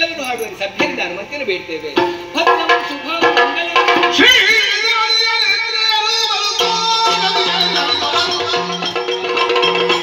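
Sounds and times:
small cymbals clattering: 0:00.0 - 0:01.1.

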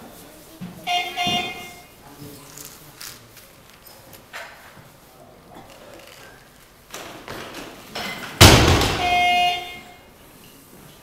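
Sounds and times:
barbell dropped on wooden platform: 0:07.4 - 0:09.4.

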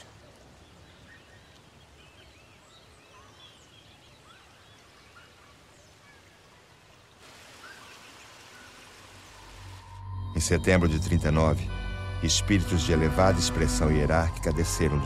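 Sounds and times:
small birds chirping: 0:00.0 - 0:09.8
background hiss: 0:00.0 - 0:10.1.

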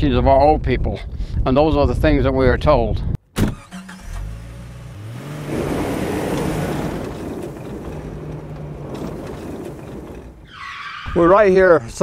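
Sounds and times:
rush of moving car: 0:03.5 - 0:11.2
car engine revving: 0:03.6 - 0:10.7.

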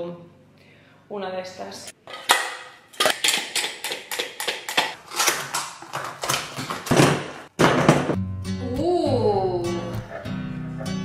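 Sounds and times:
hand tools clicking and clacking: 0:02.0 - 0:07.9.

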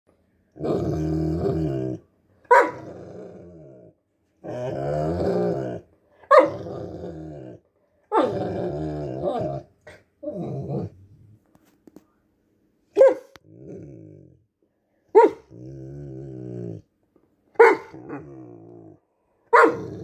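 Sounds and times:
dog growly vocalisations: 0:00.5 - 0:02.0, 0:02.8 - 0:05.9, 0:06.5 - 0:11.2, 0:13.4 - 0:14.5, 0:15.4 - 0:16.9, 0:17.9 - 0:19.1, 0:19.7 - 0:20.0
dog yelp: 0:02.5 - 0:02.8, 0:06.3 - 0:06.6, 0:13.0 - 0:13.3, 0:15.2 - 0:15.4, 0:17.6 - 0:18.0, 0:19.5 - 0:19.9.

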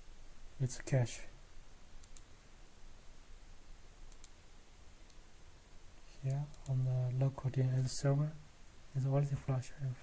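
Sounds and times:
computer mouse clicks: 0:02.0 - 0:02.3, 0:04.1 - 0:04.4, 0:06.2 - 0:06.8.

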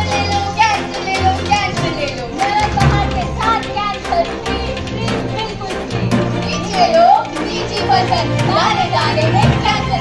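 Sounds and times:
background music: 0:00.0 - 0:10.0
young voices: 0:00.0 - 0:10.0.

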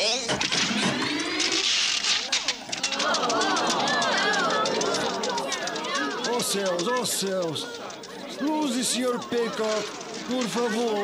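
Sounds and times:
film projector clattering: 0:00.2 - 0:11.0
audience voices of dismay: 0:00.8 - 0:11.0.

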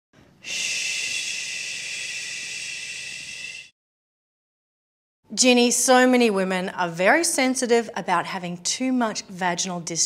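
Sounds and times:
person shushing: 0:00.4 - 0:03.7.

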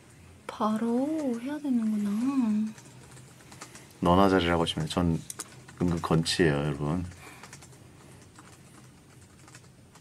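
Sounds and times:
keyboard typing: 0:00.6 - 0:10.0.

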